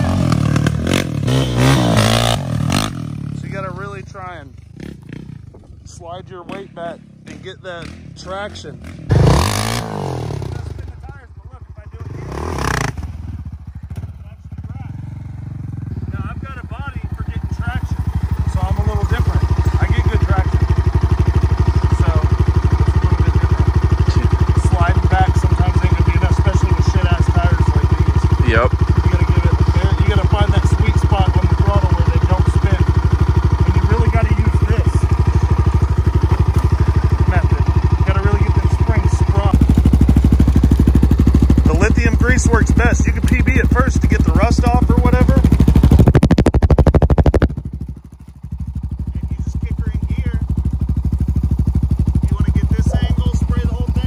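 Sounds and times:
small atv engine running: 0.0 - 54.0
man talking: 3.4 - 4.6, 5.8 - 8.8, 10.4 - 12.4, 16.0 - 20.6, 21.7 - 32.9, 33.6 - 35.5, 37.0 - 39.6, 41.6 - 45.5, 49.1 - 50.5, 52.2 - 54.0.

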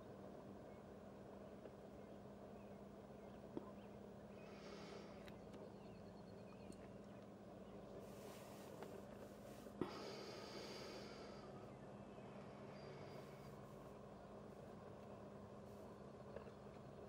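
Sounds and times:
faint steady hum: 0.0 - 17.0.

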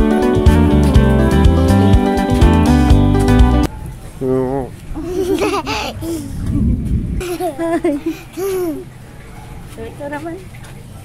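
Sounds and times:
young child laughing: 5.0 - 8.9.

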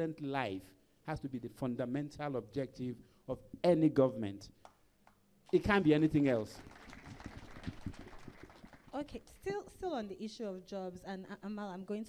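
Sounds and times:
faint hall room noise: 0.0 - 12.0.

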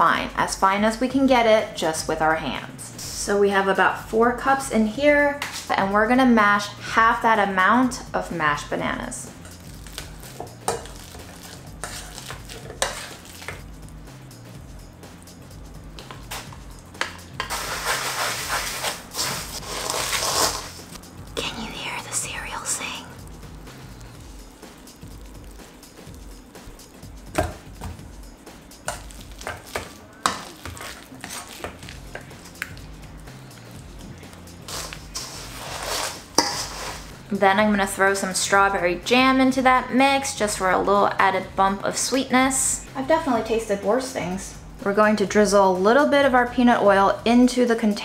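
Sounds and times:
quiet background music: 0.0 - 48.0
cornflakes rustling and crunching: 17.5 - 20.9, 34.7 - 37.1.

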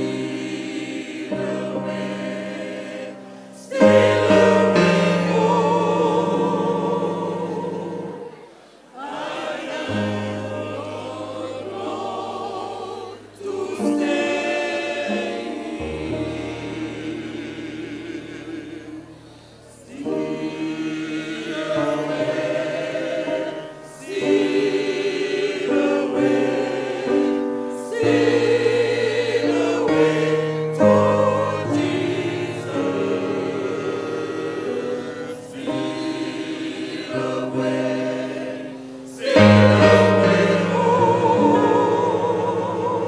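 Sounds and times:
mixed choir singing in harmony: 0.0 - 43.0.

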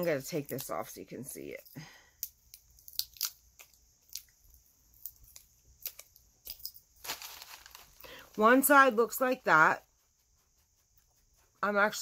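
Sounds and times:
small sharp clicks and snips: 2.2 - 4.4.

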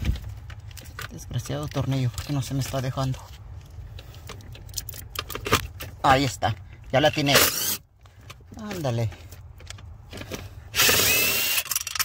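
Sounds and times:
power tool whine: 10.7 - 11.8.

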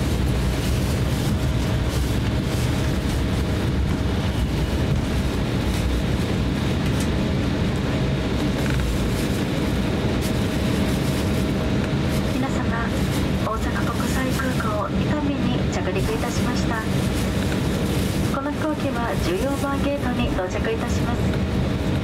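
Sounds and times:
airliner engines rumbling: 0.0 - 22.0
cabin crew announcement: 12.3 - 17.0, 18.3 - 21.4.

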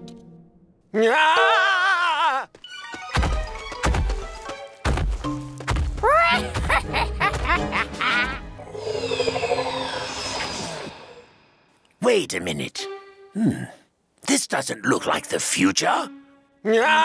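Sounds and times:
heavy cartoon footstep thuds: 3.2 - 6.0.

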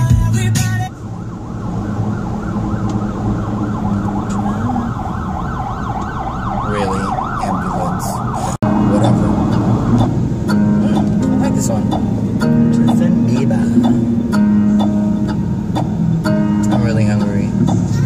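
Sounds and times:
emergency siren yelping: 0.8 - 10.4.

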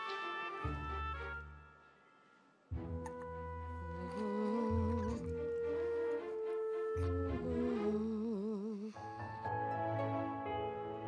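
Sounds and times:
soft background music: 2.7 - 11.0.

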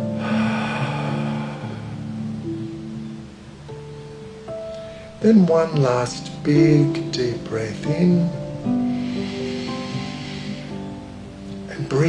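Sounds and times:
slow harp music: 0.0 - 12.0
soft rush of noise: 0.0 - 12.0.

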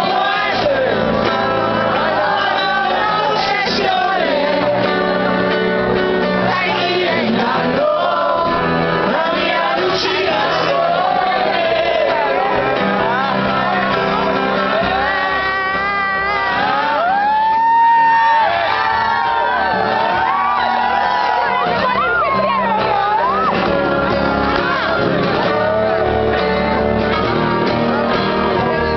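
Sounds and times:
man singing: 0.0 - 19.1, 27.8 - 28.9
audience voices and shouts: 0.0 - 28.9
strummed acoustic guitar: 0.0 - 28.9.

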